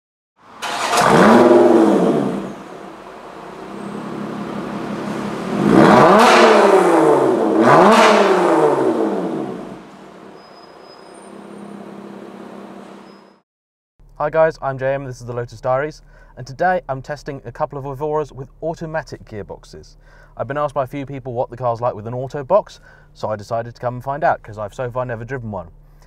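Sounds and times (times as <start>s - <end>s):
car engine revving: 0.5s - 10.5s, 11.2s - 13.1s.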